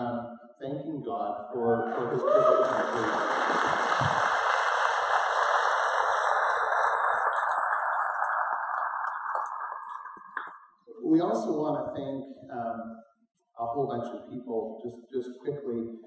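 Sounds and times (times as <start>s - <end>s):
congregation applauding: 1.9s - 10.6s.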